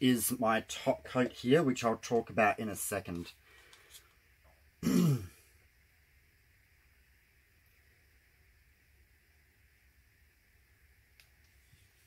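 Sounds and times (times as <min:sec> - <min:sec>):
man clearing throat: 0:04.8 - 0:05.4.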